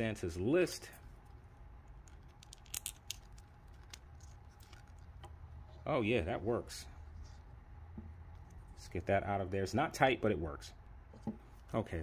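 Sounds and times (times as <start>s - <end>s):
low steady hum: 0.0s - 12.0s
plastic figure clicking and rubbing: 1.2s - 5.4s.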